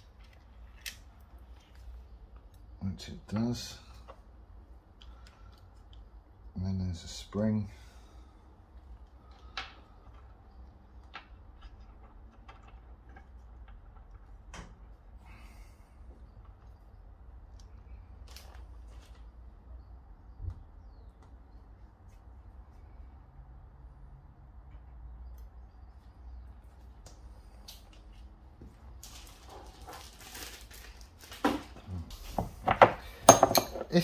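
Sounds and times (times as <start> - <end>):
rustling: 28.9 - 32.6
metallic clinks and knocks: 32.6 - 34.0.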